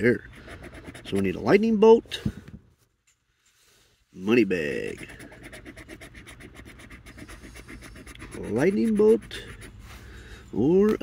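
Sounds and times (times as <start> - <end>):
coin scratching lottery ticket: 0.0 - 1.8, 4.6 - 9.8.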